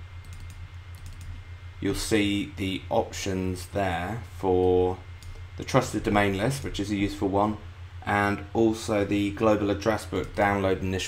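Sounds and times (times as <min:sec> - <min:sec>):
low electrical hum: 0:00.0 - 0:11.0
faint computer clicks: 0:00.2 - 0:01.4
man speaking: 0:01.8 - 0:05.0, 0:05.6 - 0:11.0.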